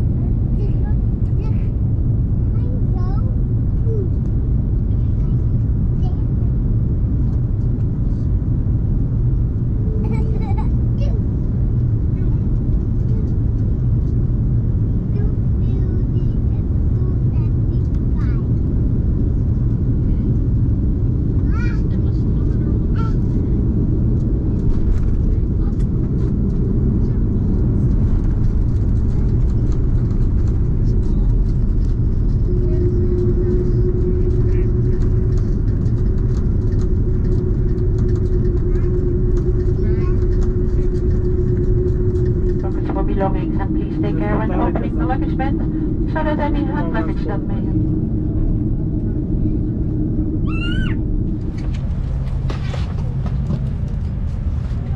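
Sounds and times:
airplane cabin rumble: 0.0 - 54.9
steady tone: 29.8 - 54.9.

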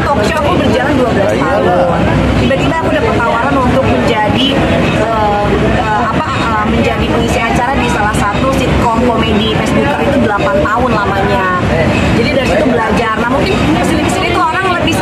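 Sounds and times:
woman talking: 0.0 - 15.0.

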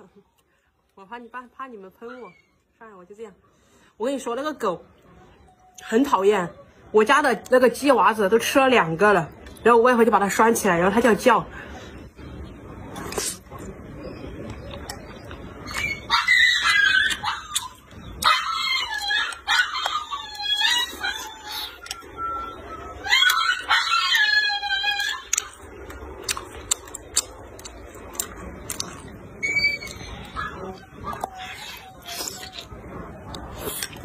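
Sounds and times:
dog whining and howling: 15.6 - 26.1, 29.3 - 33.2.

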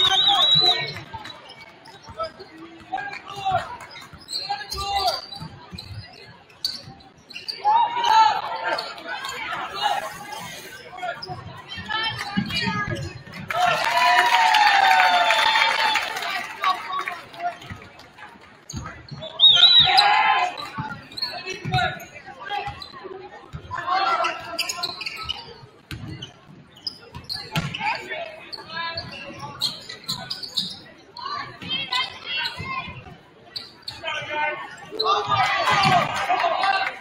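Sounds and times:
voices shouting: 19.4 - 20.6.

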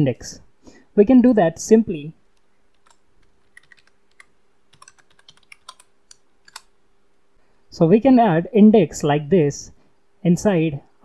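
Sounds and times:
faint steady hum: 0.0 - 11.0
keyboard typing: 2.7 - 6.7.

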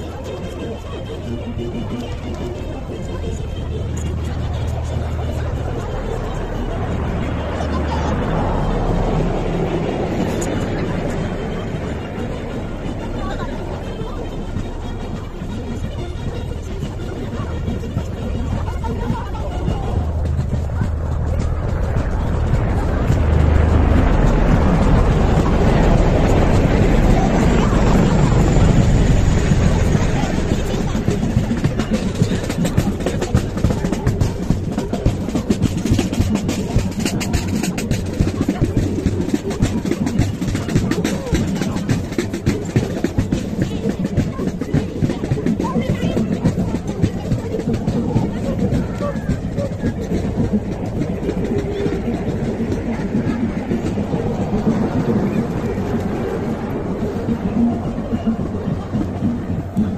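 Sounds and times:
helicopter rumble overhead: 0.0 - 59.9
military marching band playing: 0.0 - 59.9.

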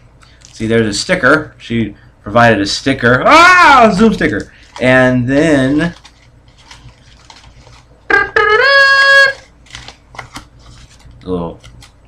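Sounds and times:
package rustling and clicking: 5.8 - 7.9, 9.3 - 12.0
man singing falsetto fanfare: 8.1 - 9.4.

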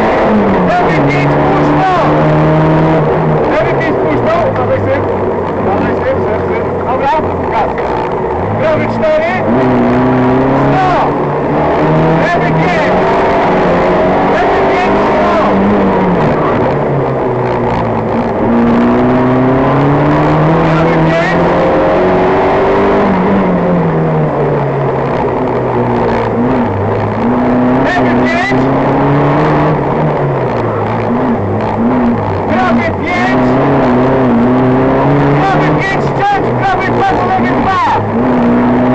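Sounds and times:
person speaking: 0.0 - 2.4, 3.5 - 7.9, 8.5 - 11.2, 11.9 - 16.6, 27.7 - 28.8, 32.4 - 33.7, 35.2 - 38.2
car engine running under load: 0.0 - 38.9.

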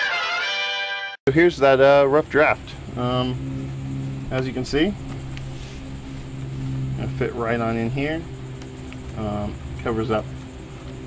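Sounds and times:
machine motor humming: 2.0 - 11.0.

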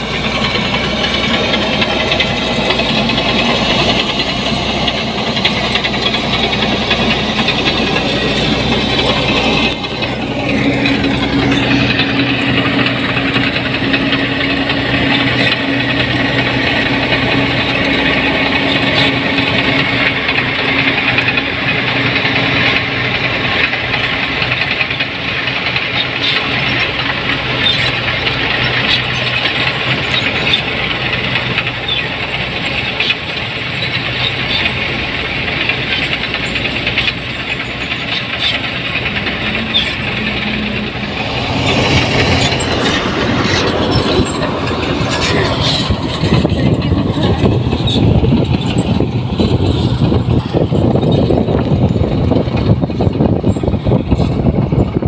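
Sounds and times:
combine harvester diesel engine: 0.0 - 55.0.

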